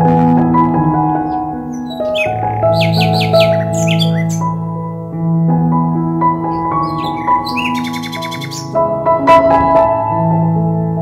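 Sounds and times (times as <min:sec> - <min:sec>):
keyboard music with held notes: 0:00.0 - 0:11.0
bird chirping trill: 0:01.2 - 0:04.6, 0:06.4 - 0:08.8.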